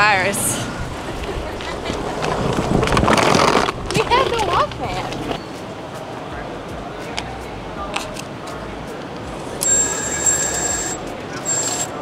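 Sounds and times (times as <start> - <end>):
low station background noise: 0.0 - 12.0
long high electronic beep: 9.6 - 12.0.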